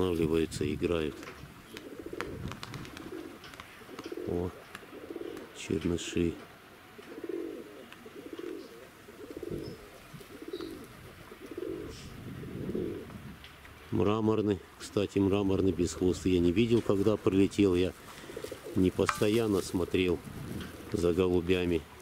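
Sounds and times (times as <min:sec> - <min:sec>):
pigeons cooing: 0:00.0 - 0:13.9, 0:14.6 - 0:22.0.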